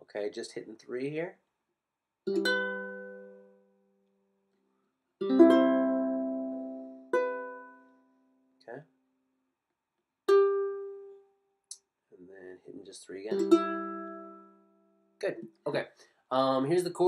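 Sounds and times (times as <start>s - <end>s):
ukulele chords strummed: 2.3s - 3.7s, 5.2s - 8.3s, 10.3s - 11.2s, 13.3s - 14.8s.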